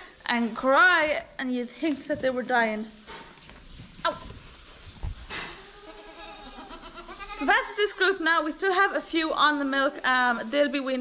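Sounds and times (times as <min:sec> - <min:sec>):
goat kids bleating: 0:05.5 - 0:07.9.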